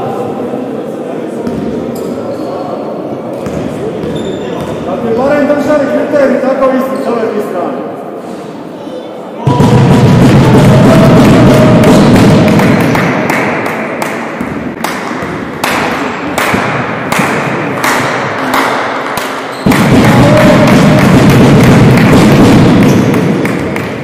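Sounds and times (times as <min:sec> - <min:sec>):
crowd noise in sports hall: 0:00.0 - 0:24.0
rhythmic thumping: 0:09.5 - 0:13.6, 0:19.6 - 0:24.0.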